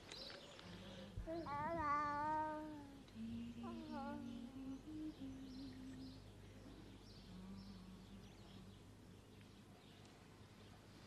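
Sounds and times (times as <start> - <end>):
low wavering hum: 0.7 - 9.3.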